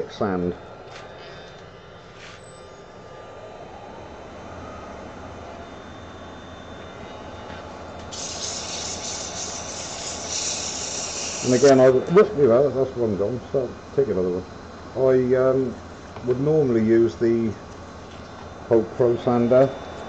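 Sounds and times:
lathe motor whine: 0:00.0 - 0:20.0
sandpaper hissing on spinning wood: 0:08.1 - 0:11.9.

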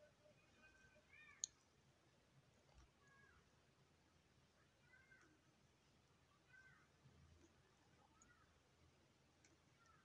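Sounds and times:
faint high-pitched calls: 0:00.0 - 0:01.5
knitting needles clicking: 0:01.2 - 0:01.7, 0:06.5 - 0:08.6, 0:09.3 - 0:10.0.

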